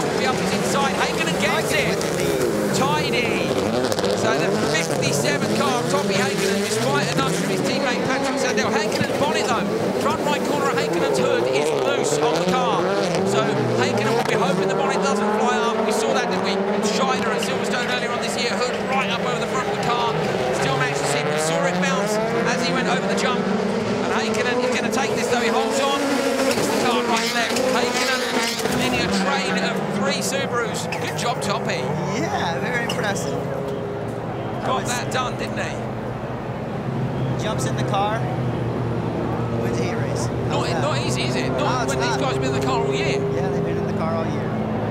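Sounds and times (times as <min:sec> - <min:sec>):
racing car engines: 0:00.0 - 0:44.9.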